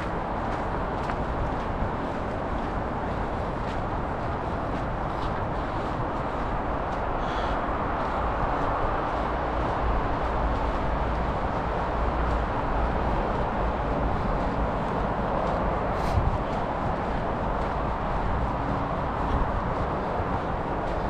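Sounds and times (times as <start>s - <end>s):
distant road traffic: 0.0s - 21.0s
wind rumble on microphone: 0.0s - 21.0s.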